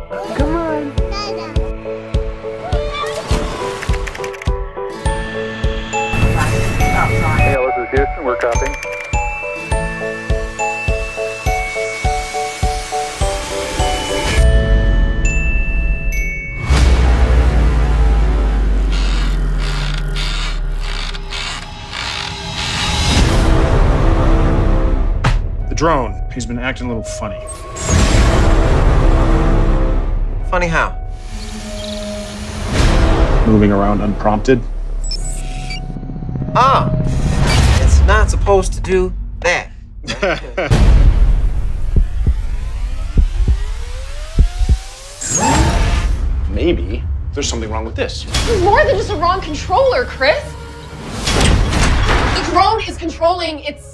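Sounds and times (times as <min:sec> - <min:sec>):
drone ratchet-like whirs: 0:18.9 - 0:23.1
low bass rumble: 0:35.8 - 0:45.2
deep boom: 0:37.0 - 0:45.0
dull low thumps: 0:38.1 - 0:45.2.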